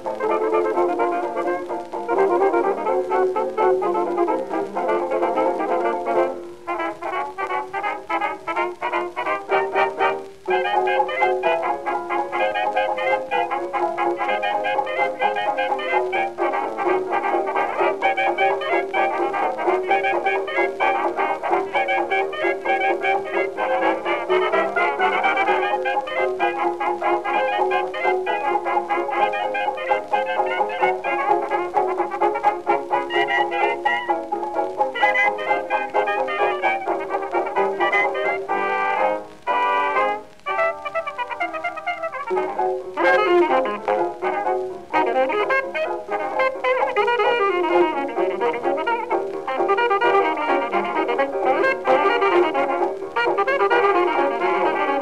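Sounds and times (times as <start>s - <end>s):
jazz dance band on old record: 0.0s - 55.0s.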